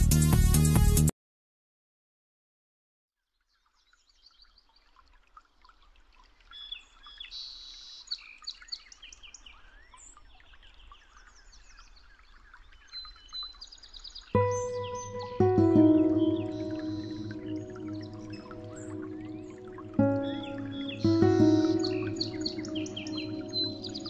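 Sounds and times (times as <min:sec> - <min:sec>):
small birds chirping: 0:03.4 - 0:24.0
loud steady musical tone: 0:14.4 - 0:24.0.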